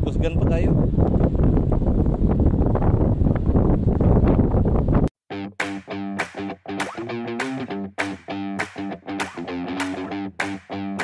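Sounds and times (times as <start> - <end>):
wind buffeting microphone: 0.0 - 5.1.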